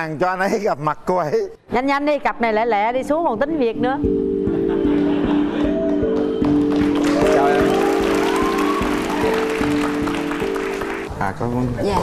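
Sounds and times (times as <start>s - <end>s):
background music sustained chords: 3.2s - 11.2s
studio audience applauding: 5.0s - 11.1s.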